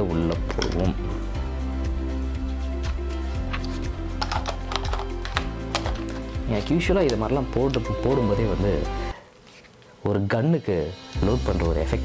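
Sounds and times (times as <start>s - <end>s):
background music: 0.0s - 9.3s, 10.0s - 12.0s
plastic clicks and rattles: 4.2s - 6.2s.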